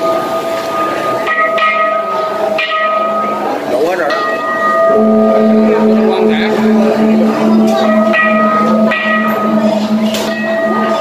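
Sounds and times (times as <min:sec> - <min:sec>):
bell-like ringing tones: 0:00.0 - 0:11.0
crowd murmur: 0:00.0 - 0:11.0.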